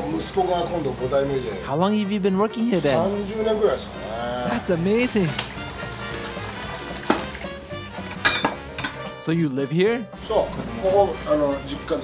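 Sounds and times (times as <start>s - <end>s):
tap water running into a wok: 3.0s - 9.2s
ceramic dishes clinking: 8.1s - 9.1s.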